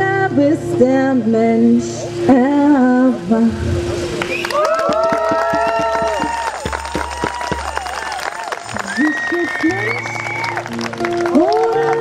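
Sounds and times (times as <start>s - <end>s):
audience clapping: 4.2s - 12.0s
acoustic guitar: 5.2s - 12.0s.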